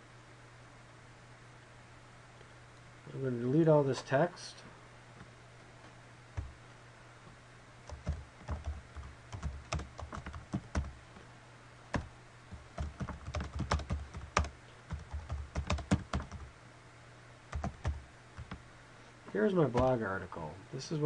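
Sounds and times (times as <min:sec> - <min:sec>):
faint low hum: 0:00.0 - 0:21.0
keyboard typing: 0:07.9 - 0:10.9, 0:12.7 - 0:16.5, 0:17.5 - 0:18.6.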